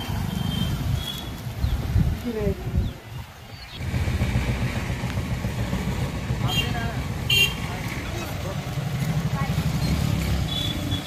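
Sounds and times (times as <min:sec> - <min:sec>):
vehicle engine running: 0:03.8 - 0:11.0.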